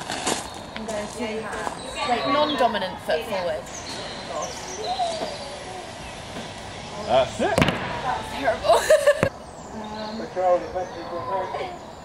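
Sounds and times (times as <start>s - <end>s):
faint birdsong: 0.0s - 12.0s.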